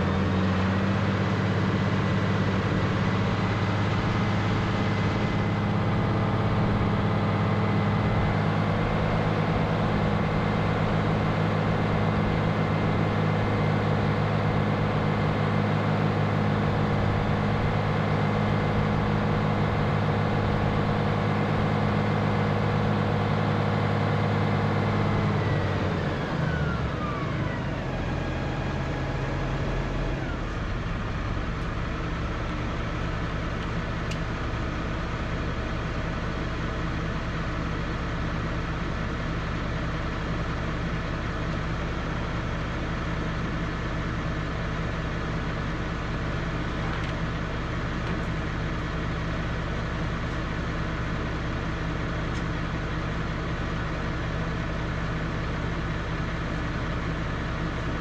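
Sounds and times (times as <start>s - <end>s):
tractor diesel engine: 0.0s - 58.0s.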